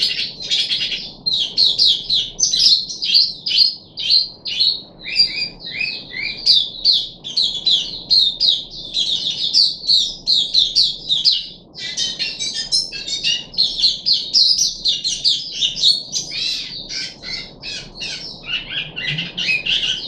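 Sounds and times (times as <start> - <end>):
bird twittering song: 0.0 - 20.0.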